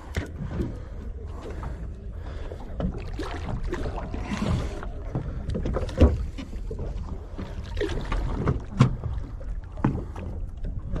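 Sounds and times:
wind and water rumble: 0.0 - 11.0.

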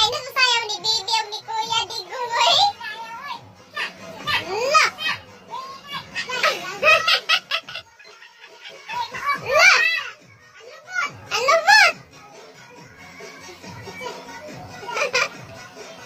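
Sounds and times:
children shouting and squealing: 0.0 - 16.0
music: 0.0 - 16.0.

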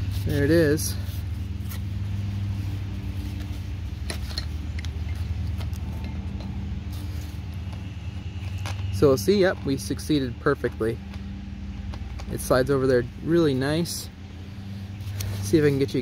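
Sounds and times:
low motor hum: 0.0 - 16.0.

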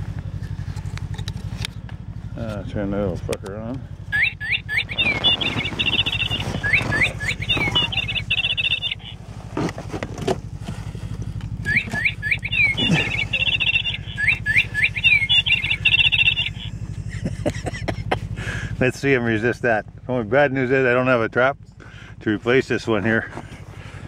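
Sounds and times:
steady low hum: 0.0 - 24.0
toy bird song chirps and trills: 4.1 - 9.2, 11.6 - 16.7.

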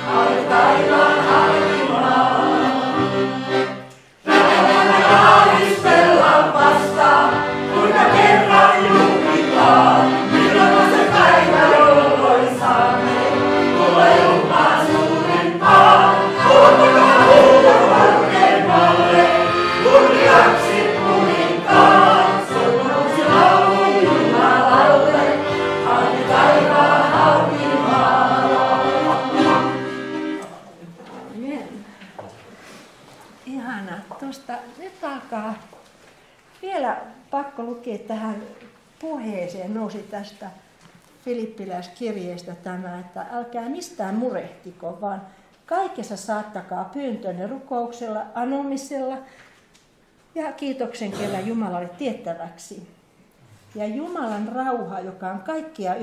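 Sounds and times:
group singing a hymn: 0.0 - 30.4.

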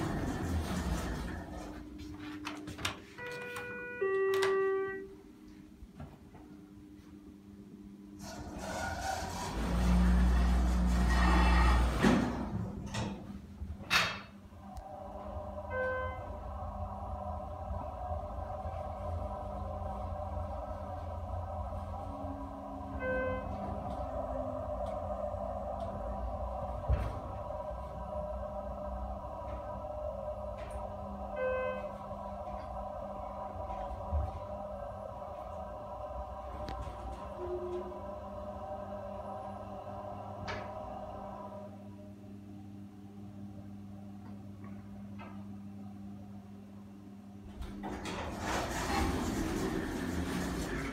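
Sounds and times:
elevator doors operating: 0.0 - 6.4, 8.1 - 42.2, 47.4 - 50.9
elevator drive hum: 0.0 - 50.9
elevator rumble: 0.0 - 50.9.

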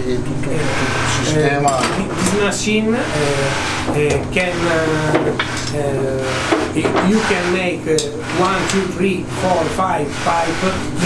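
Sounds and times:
electric motor humming: 0.0 - 11.0
man talking: 0.0 - 11.0.

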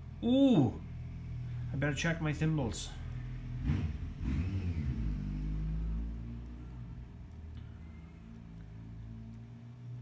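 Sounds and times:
low engine rumble: 0.0 - 10.0.

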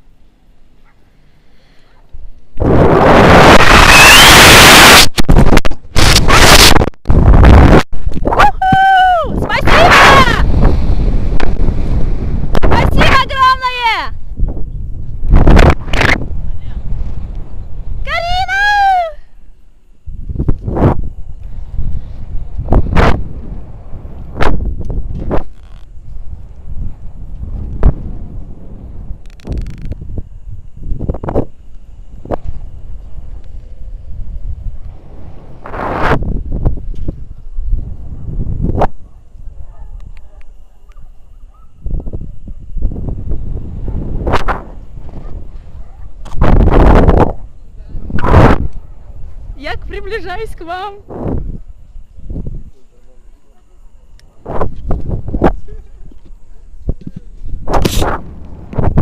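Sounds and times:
wind buffeting microphone: 2.5 - 19.1, 20.0 - 40.4, 41.5 - 52.8, 54.4 - 59.0.

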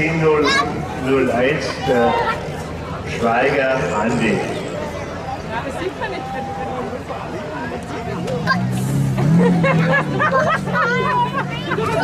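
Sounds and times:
crowd chatter: 0.0 - 12.0
car engine pulling away: 7.6 - 12.0.

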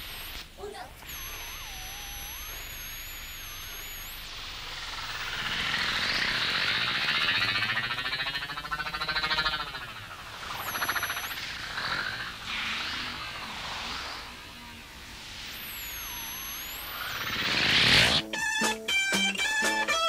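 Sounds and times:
tape hiss: 0.0 - 6.4, 10.0 - 20.0
wavering gliding electronic tone: 1.0 - 19.7.

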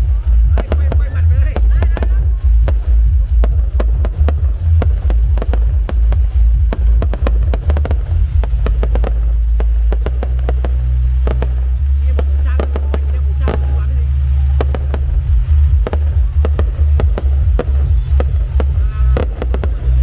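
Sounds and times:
fireworks bangs and crackles: 0.0 - 20.0
low rumble: 0.0 - 20.0.

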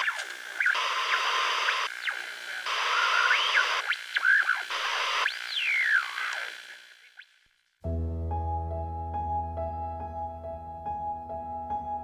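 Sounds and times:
radio static hiss: 0.0 - 7.3.

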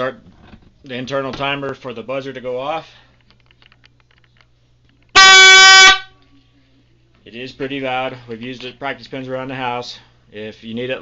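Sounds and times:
buzzer horn blast: 5.2 - 6.2.

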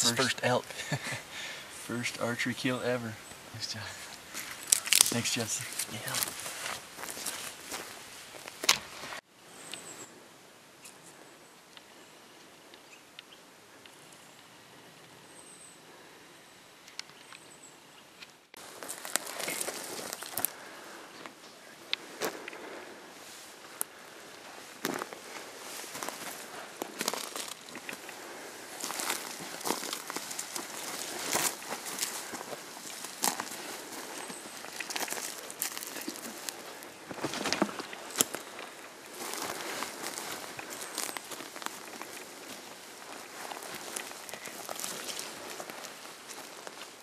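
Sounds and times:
footsteps crunching over twigs: 3.3 - 9.2, 18.6 - 47.0.

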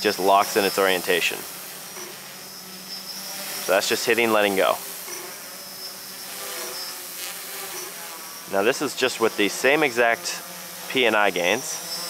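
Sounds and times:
quadcopter motors buzzing: 0.0 - 12.0.

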